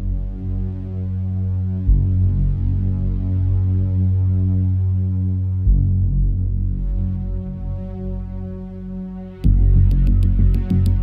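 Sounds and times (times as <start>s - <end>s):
low synthesizer drone: 0.0s - 11.0s
deep pulse: 1.8s - 4.3s, 5.4s - 8.4s, 9.4s - 11.0s.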